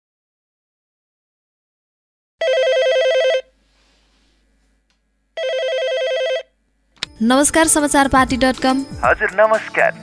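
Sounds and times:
telephone ringing trill: 2.4s - 3.5s, 5.4s - 6.6s.

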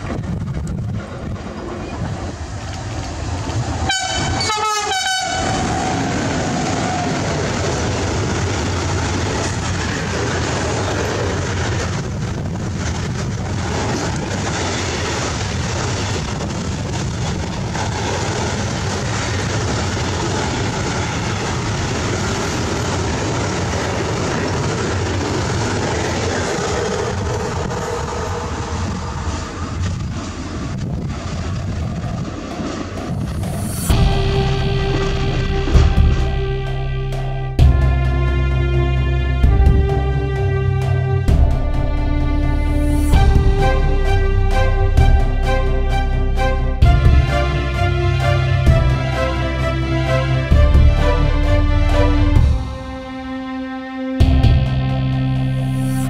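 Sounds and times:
freight train rumbling over rails: 0.0s - 56.0s
train horn blasts: 3.8s - 6.2s, 33.9s - 56.0s.

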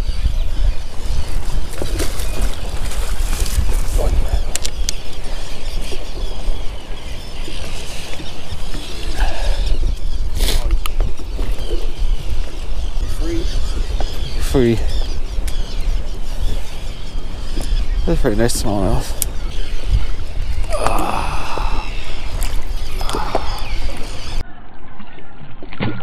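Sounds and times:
open water: 0.0s - 26.0s
wind rumbling on microphone: 0.0s - 26.0s.

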